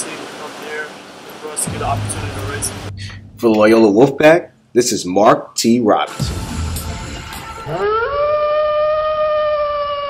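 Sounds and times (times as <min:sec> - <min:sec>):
wolf howling: 0:07.6 - 0:10.0.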